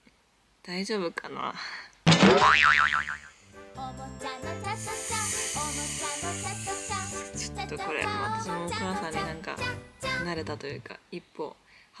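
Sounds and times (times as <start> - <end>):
cartoon wobbling boing: 2.1 - 3.4
light background music: 3.4 - 10.8.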